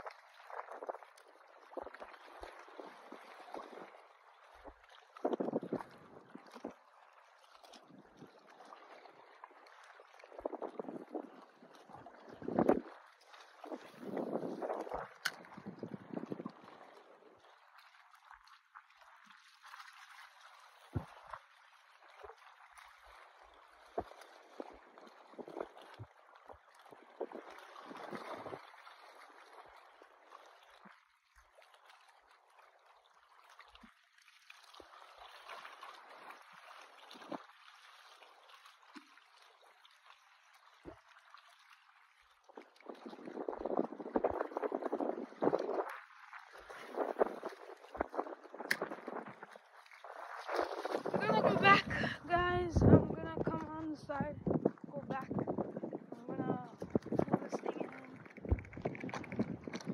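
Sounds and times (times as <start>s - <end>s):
small waves lapping against rocks: 0.0s - 59.9s.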